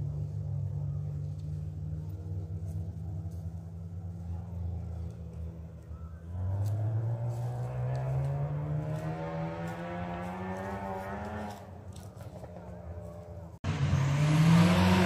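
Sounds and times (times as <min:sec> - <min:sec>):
racing engine revving: 0:06.3 - 0:15.0.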